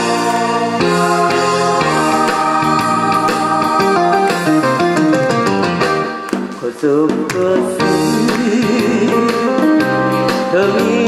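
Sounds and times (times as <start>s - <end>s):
person singing with vibrato: 0.0s - 5.3s, 6.6s - 11.0s
amplified backing track with beat: 0.0s - 11.0s.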